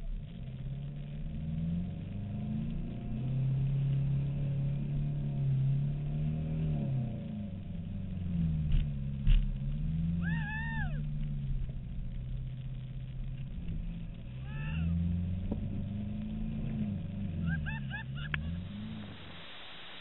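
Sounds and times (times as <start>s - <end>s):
vehicle engine revving: 0.0s - 20.0s.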